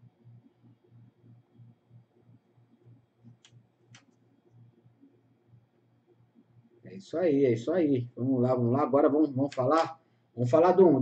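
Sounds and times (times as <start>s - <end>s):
faint pulsing low hum: 0.0s - 11.0s.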